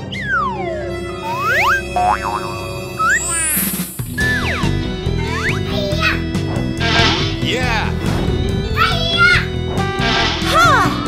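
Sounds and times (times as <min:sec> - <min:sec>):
background music: 0:00.0 - 0:11.0
cartoon pitch glide effects: 0:00.1 - 0:05.6.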